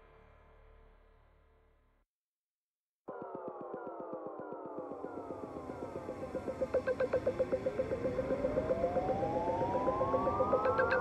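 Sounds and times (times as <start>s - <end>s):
rapid pulsing tone: 3.1s - 11.0s
synthesizer tones sliding down: 3.1s - 11.0s
rising synth sweep: 3.2s - 11.0s.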